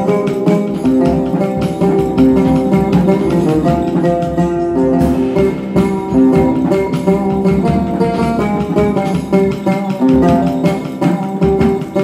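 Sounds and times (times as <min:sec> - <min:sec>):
drums and cymbals: 0:00.0 - 0:12.0
oud melody: 0:00.0 - 0:12.0.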